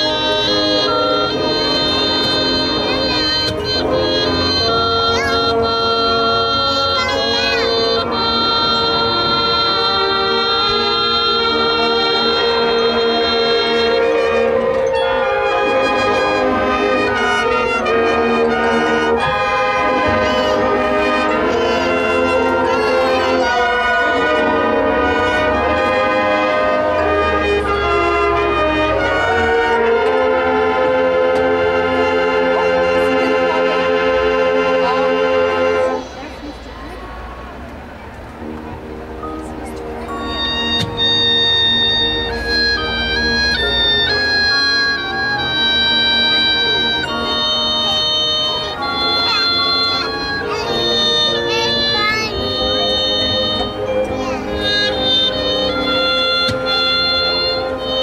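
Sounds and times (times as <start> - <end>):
marching band playing: 0.0 - 58.0.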